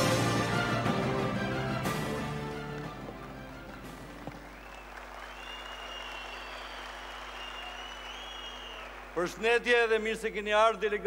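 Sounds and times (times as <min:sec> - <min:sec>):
arena crowd applauding: 0:00.0 - 0:10.0.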